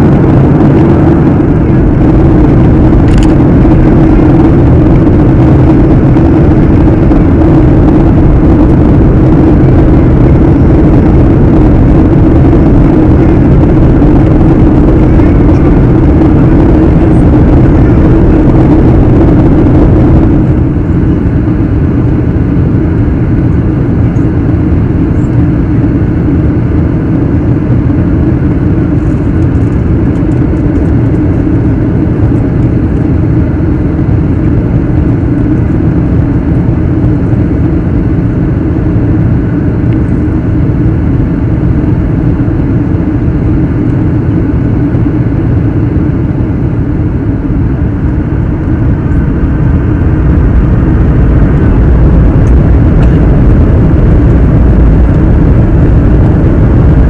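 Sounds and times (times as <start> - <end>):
airplane cabin engine rumble: 0.0 - 57.0
steady low hum: 0.0 - 57.0.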